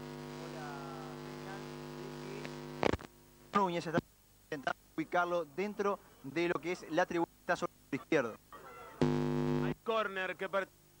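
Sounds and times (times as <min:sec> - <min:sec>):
loud crackle: 0:00.3 - 0:03.1.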